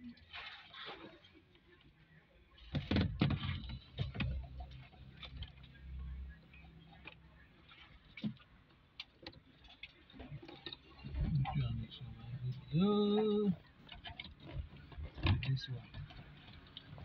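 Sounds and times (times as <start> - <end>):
plastic clicks and knocks: 2.7 - 5.6, 13.8 - 17.0.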